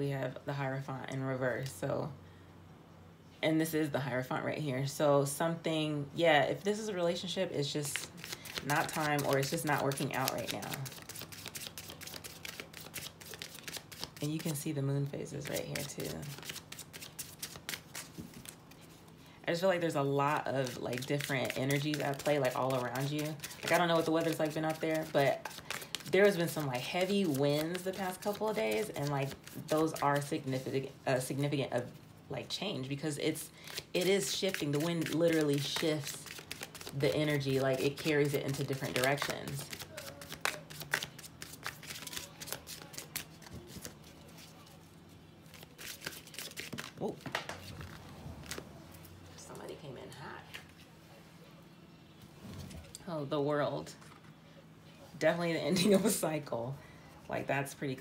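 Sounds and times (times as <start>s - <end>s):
cards being shuffled: 7.9s - 14.6s, 15.4s - 19.1s, 20.5s - 30.6s, 33.7s - 44.7s, 45.5s - 48.6s.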